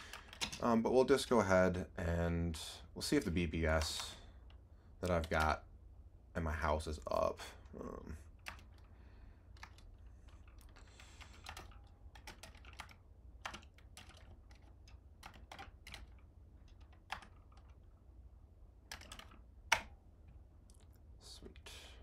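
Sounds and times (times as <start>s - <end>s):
computer keyboard typing: 0.0s - 0.7s, 5.0s - 5.6s, 8.3s - 8.9s, 9.5s - 17.9s, 18.8s - 20.0s.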